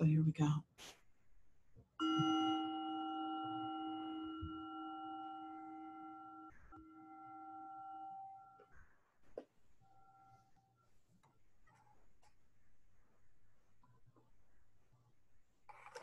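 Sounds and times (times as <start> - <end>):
meditation bell ringing: 2.0 - 8.8.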